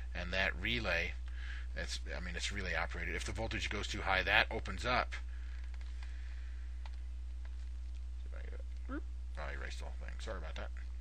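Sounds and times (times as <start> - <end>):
low electrical hum: 0.0 - 11.0
faint clicks: 5.5 - 6.2.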